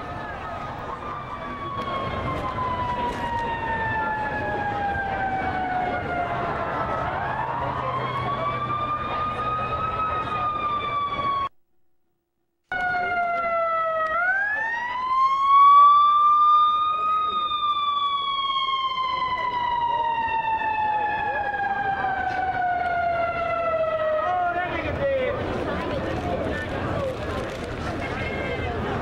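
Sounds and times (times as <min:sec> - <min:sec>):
emergency siren wailing: 0:00.0 - 0:11.5, 0:12.7 - 0:25.0.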